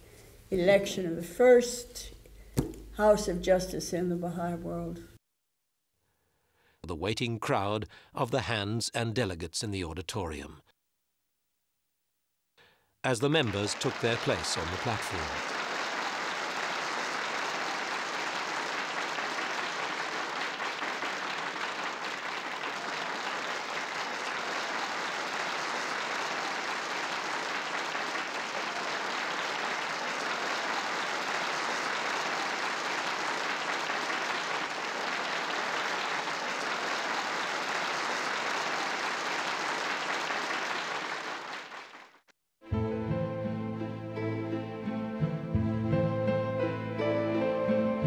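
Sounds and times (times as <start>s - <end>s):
audience applauding: 13.1s - 42.2s.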